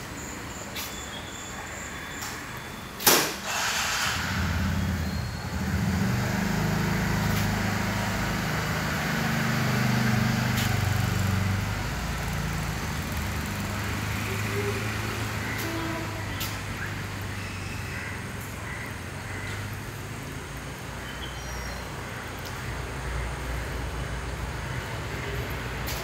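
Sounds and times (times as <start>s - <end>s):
vehicle engine running: 4.0s - 21.1s.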